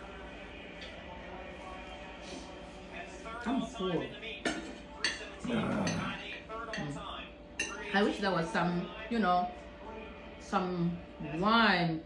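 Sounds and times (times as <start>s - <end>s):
cutlery and dishes clinking: 4.4s - 7.0s, 7.6s - 8.0s.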